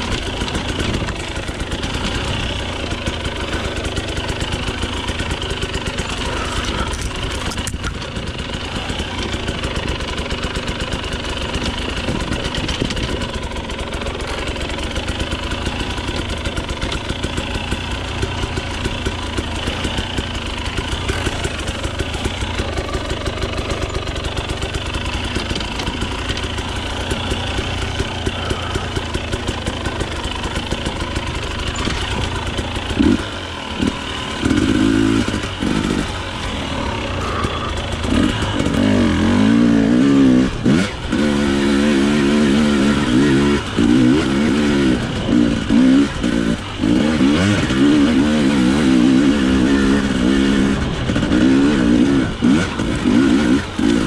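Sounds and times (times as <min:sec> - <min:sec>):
motorcycle engine running at low revs: 0:00.0 - 0:54.0.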